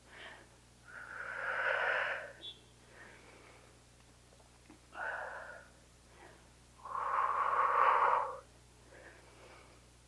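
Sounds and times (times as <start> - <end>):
person exhaling hard: 0.1 - 2.4, 5.0 - 8.4.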